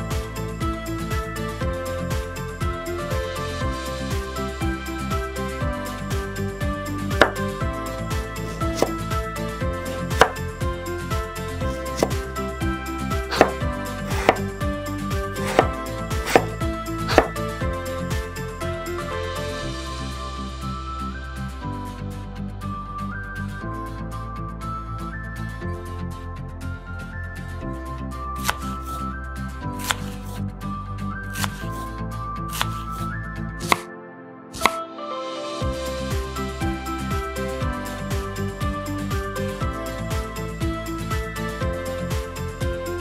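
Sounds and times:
background music: 0.0 - 43.0
knife chopping on wooden board: 8.5 - 9.0, 10.2 - 10.4, 12.0 - 12.2, 13.3 - 14.4, 15.4 - 17.4, 31.4 - 31.6, 33.6 - 33.8, 34.6 - 34.8.

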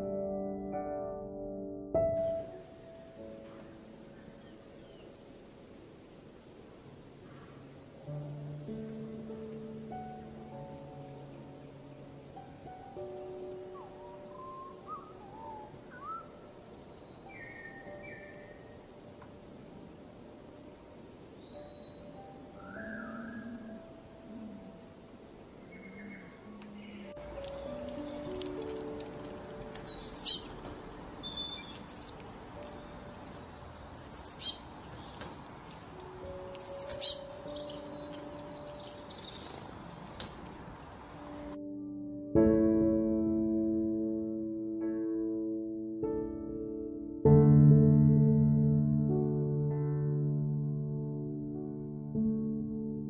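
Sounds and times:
soft background music: 0.0 - 5.3, 7.7 - 19.9, 21.2 - 26.2, 26.8 - 53.0
songbird chirping: 2.0 - 41.6
songbird whistling: 13.7 - 18.7, 21.4 - 23.8, 29.8 - 33.0, 33.9 - 35.5, 36.6 - 40.9
faint held music notes: 20.6 - 41.6.

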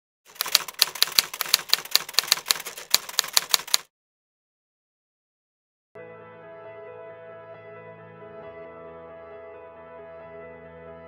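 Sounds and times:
keyboard keys clacking: 0.3 - 3.8.

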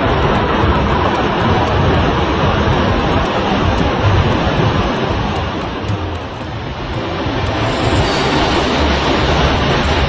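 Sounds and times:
surf breaking on rocky shore: 0.0 - 10.0.

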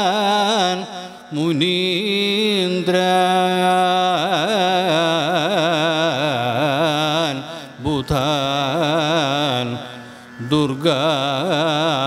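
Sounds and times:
solo voice singing prayer: 0.0 - 12.0.

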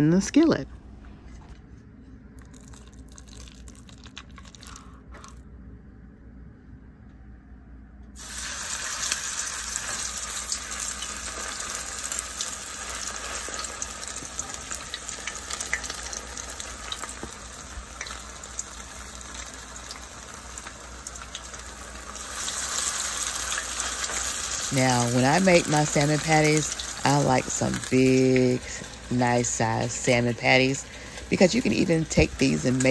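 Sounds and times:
patties sizzling in hot oil: 2.4 - 5.3, 8.2 - 32.9.

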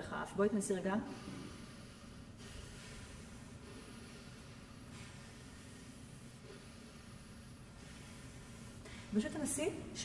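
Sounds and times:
faint nasal breathing: 1.1 - 9.2.

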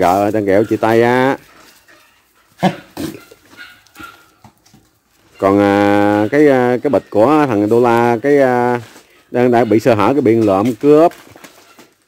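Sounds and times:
dogs barking and yipping: 0.0 - 10.7.

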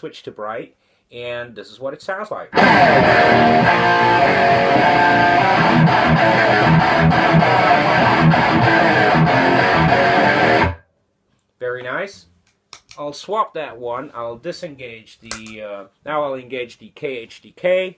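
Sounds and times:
distorted electric guitar riff: 2.6 - 10.8.

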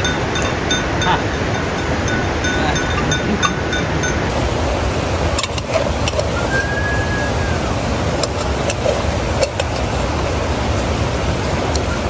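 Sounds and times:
ladle clinking against pot: 0.0 - 4.3
thin high tone: 0.0 - 4.4
steady loud rumbling: 0.0 - 12.0.

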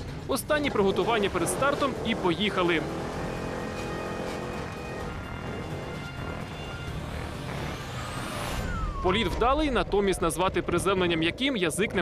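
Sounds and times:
car engine running hard: 0.0 - 9.7
background music: 0.0 - 12.0
rising high sweep: 2.5 - 10.0.

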